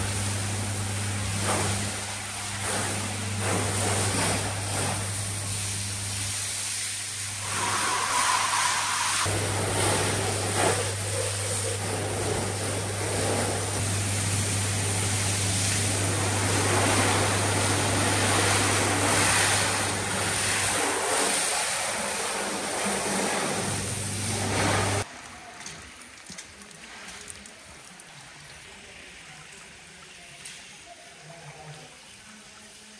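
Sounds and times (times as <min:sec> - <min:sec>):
water spray hissing on metal: 0:01.2 - 0:25.1.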